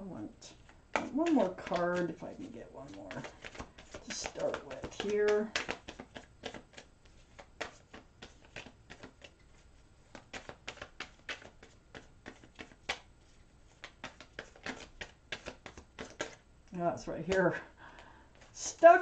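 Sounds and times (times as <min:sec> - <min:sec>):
cards being shuffled: 0:00.6 - 0:16.4.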